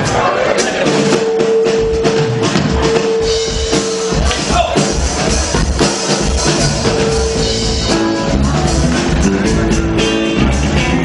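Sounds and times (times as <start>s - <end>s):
drum kit strokes: 0.0s - 11.0s.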